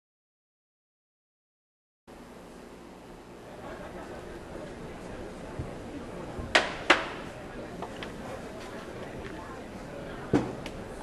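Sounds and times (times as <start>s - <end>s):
sharp clacks of hard objects: 6.6s - 7.2s.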